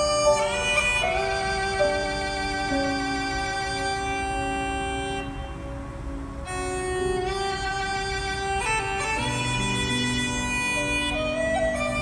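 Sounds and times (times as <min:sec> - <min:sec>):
keyboard accompaniment: 0:00.0 - 0:12.0
uilleann pipes playing slow air: 0:00.0 - 0:12.0.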